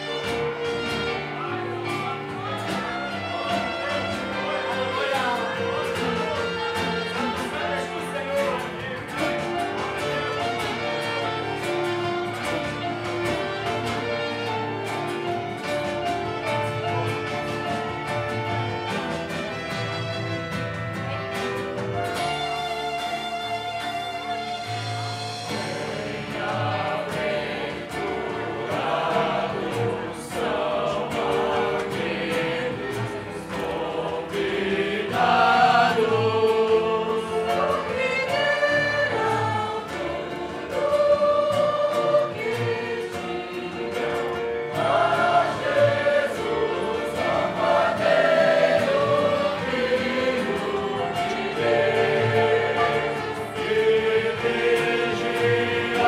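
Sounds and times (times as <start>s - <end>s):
group singing a worship hymn: 0.0s - 19.8s, 25.3s - 56.0s
instrumental accompaniment: 0.0s - 56.0s.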